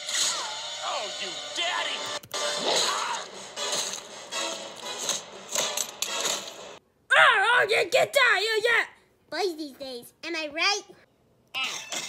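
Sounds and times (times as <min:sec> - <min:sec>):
dramatic cartoon music: 0:00.0 - 0:06.8
fight sound effects: 0:02.4 - 0:03.9.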